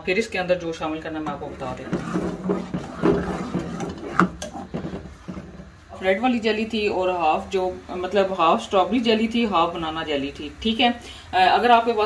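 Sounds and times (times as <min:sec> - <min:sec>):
ladle stirring in saucepan: 0:01.0 - 0:05.9.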